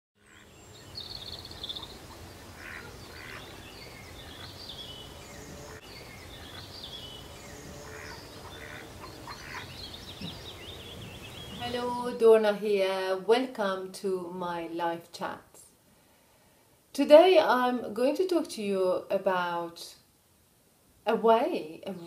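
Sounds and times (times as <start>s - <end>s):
small birds chirping: 0.2s - 12.1s
low background noise: 0.2s - 22.0s.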